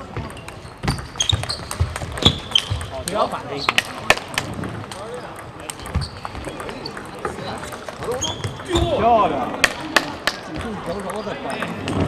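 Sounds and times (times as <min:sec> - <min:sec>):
ball clicks from other tables: 0:00.2 - 0:08.7, 0:09.6 - 0:12.0
table tennis ball clicks: 0:00.2 - 0:08.7, 0:09.6 - 0:12.0.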